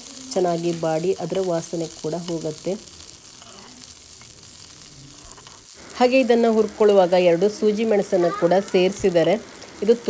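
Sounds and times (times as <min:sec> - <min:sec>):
flowers sizzling in a pan: 0:00.0 - 0:10.0.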